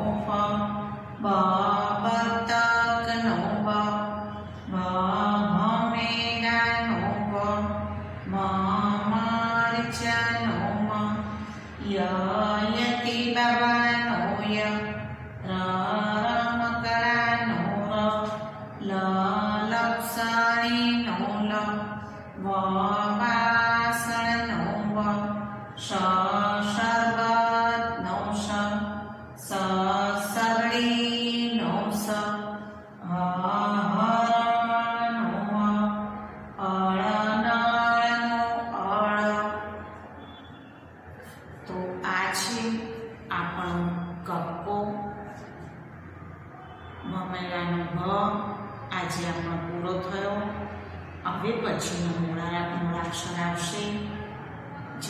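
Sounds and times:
woman chanting sing-song: 0.0s - 45.7s, 46.6s - 55.0s.

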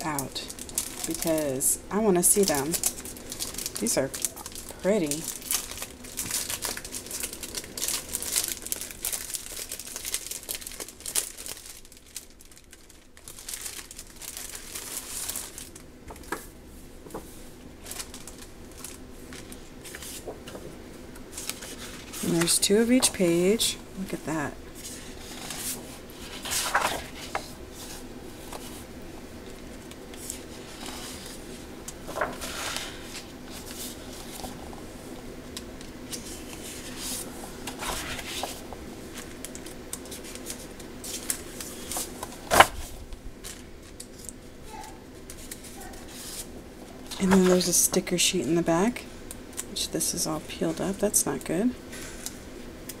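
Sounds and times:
plastic wrapping crinkling: 0.0s - 48.3s
paper sheets rustling and sliding: 16.1s - 20.7s, 21.3s - 23.5s, 24.7s - 28.9s, 30.1s - 35.0s, 36.1s - 44.0s, 45.3s - 46.5s, 47.1s - 47.8s.

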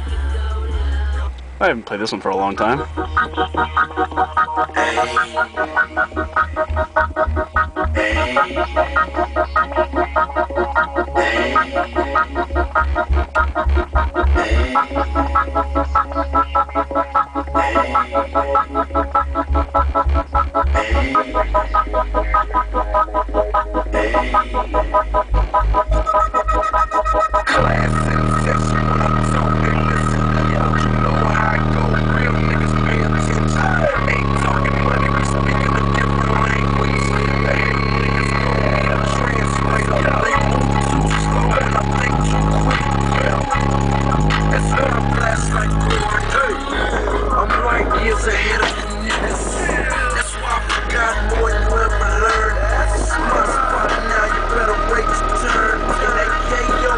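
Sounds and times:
bass-heavy music through car stereo: 0.0s - 56.9s.

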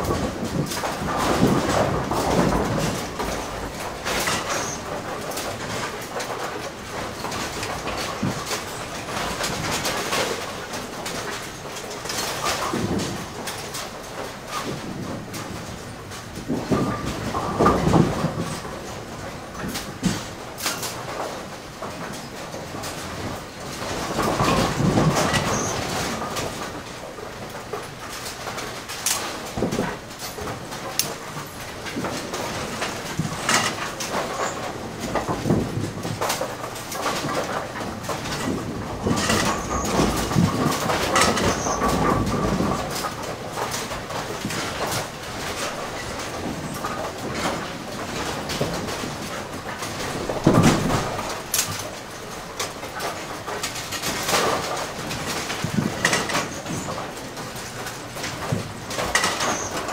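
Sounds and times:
mechanical clanks and knocks: 0.0s - 59.9s
pinsetter machinery clattering: 0.0s - 59.9s.

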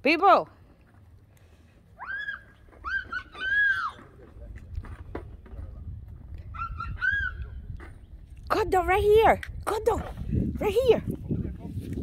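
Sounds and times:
child squealing: 2.0s - 4.0s
low rumble on microphone: 4.0s - 12.0s.

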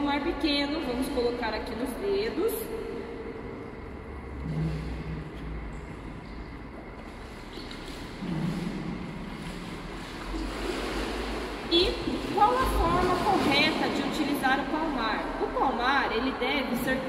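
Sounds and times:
low rumble: 2.7s - 6.9s.

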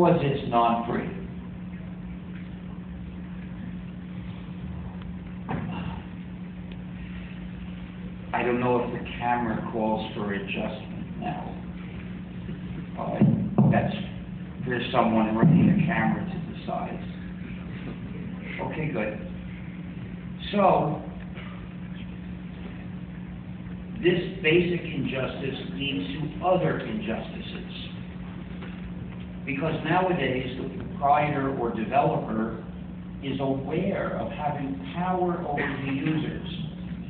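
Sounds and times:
background hiss: 0.0s - 37.0s
sound system hum: 0.0s - 37.0s.

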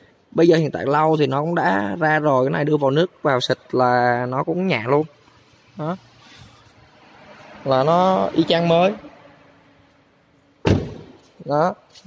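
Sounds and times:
car door slamming: 10.6s - 11.2s.

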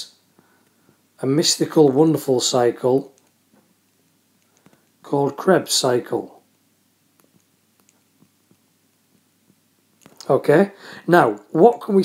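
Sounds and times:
stylus tapping on screen: 7.1s - 10.3s.

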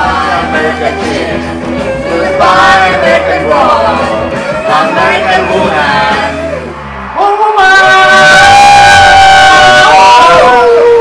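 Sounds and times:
electric guitar: 0.0s - 7.1s
singing into microphone: 0.0s - 11.0s.

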